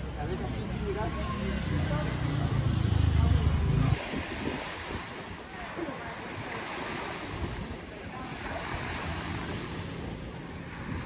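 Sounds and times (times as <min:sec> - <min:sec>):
small waves lapping at shore: 0:00.0 - 0:11.0
wind buffeting microphone: 0:00.0 - 0:11.0.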